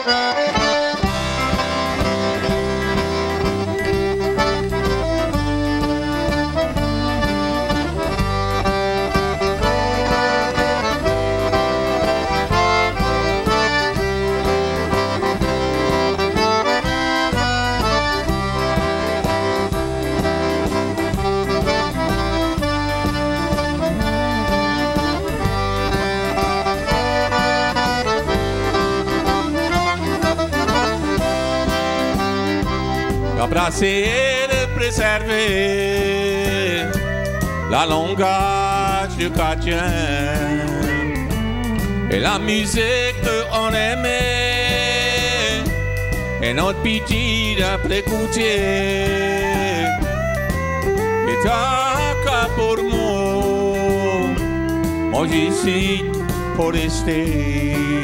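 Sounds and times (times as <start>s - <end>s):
band playing a waltz: 0.0s - 58.0s
button accordion: 0.0s - 58.0s.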